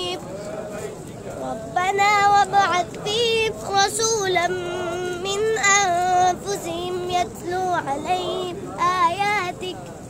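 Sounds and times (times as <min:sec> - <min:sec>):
boy chanting recitation: 0:00.0 - 0:10.0.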